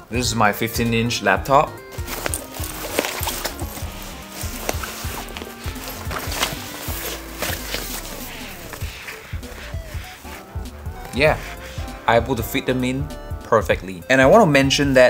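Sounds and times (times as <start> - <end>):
background music with held notes: 0.0 - 15.0
laptop sliding into backpack: 1.9 - 10.4.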